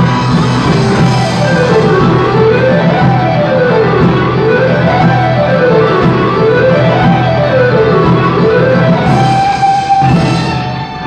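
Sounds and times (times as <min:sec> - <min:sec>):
plucked guitar: 0:00.0 - 0:11.0
string ensemble playing: 0:00.0 - 0:11.0.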